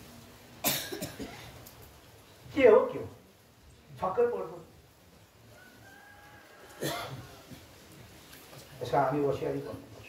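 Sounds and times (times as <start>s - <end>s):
person coughing: 0.6s - 1.5s, 6.8s - 7.2s.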